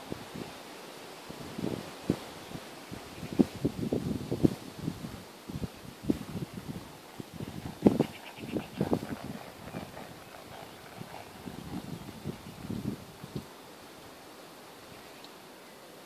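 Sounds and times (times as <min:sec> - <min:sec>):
horse hoofbeats on grass: 0:06.1 - 0:13.6.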